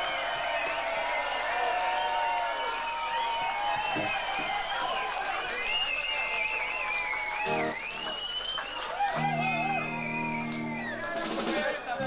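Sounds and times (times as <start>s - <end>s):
electric guitar wavering notes: 7.5s - 7.8s, 9.1s - 11.1s
low held chord: 9.2s - 11.0s.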